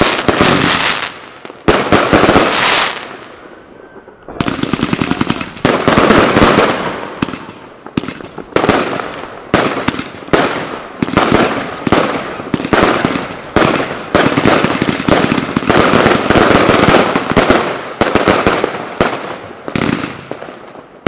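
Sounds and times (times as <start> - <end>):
fireworks cake bangs: 4.3 - 20.6.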